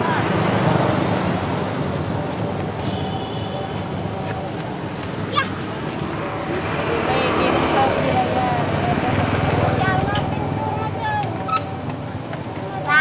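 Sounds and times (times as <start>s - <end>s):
indistinct voices: 0.0s - 13.0s.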